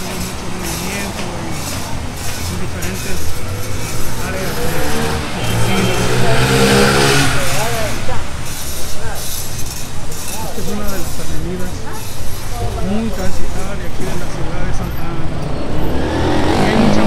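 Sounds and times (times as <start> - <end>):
motor vehicle passing: 0.0 - 17.0
people's voices: 0.0 - 17.0.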